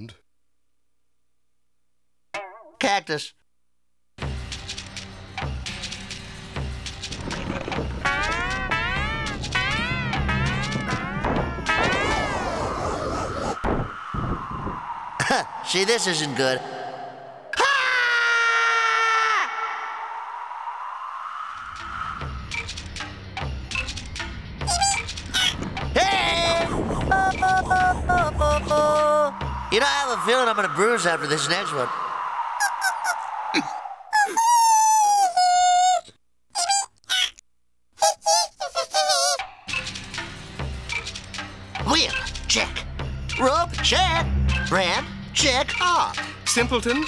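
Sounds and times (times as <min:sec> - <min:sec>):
cartoon character screaming: 0:17.5 - 0:20.2, 0:26.1 - 0:37.3, 0:38.0 - 0:39.4.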